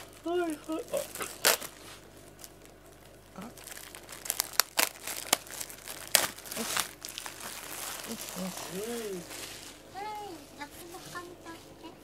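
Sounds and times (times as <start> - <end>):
plastic wrap crinkling and tearing: 0.0 - 11.0.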